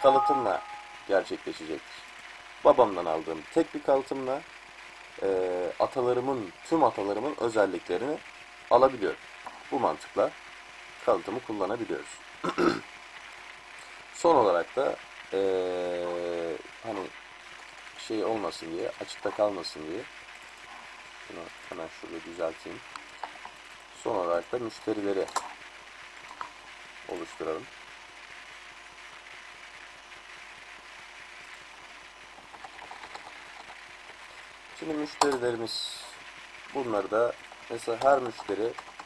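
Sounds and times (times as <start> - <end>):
man speaking: 0.0 - 1.9, 34.8 - 38.8
microphone background hiss: 0.0 - 39.0.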